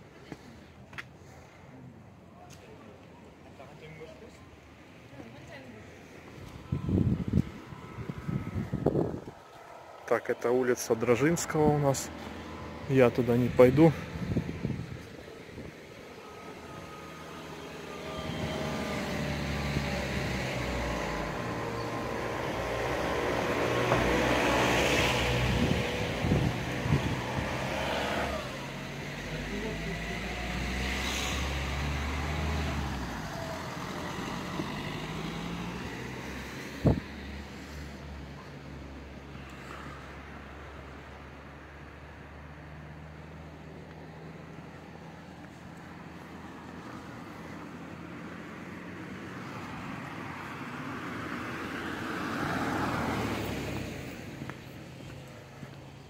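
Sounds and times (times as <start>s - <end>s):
car driving past: 5.7s - 55.8s.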